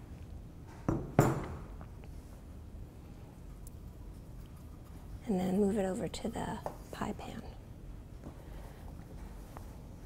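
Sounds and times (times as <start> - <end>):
knocks on steel worktable: 0.9 - 1.7.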